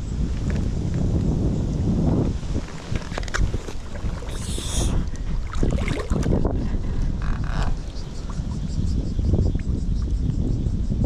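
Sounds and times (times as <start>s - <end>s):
wind rumbling on microphone: 0.0s - 11.0s
river water rushing and lapping: 2.4s - 9.0s.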